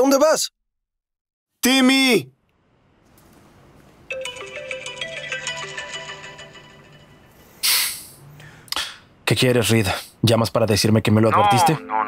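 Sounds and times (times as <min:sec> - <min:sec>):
mobile phone ringtone melody: 0:04.1 - 0:07.4.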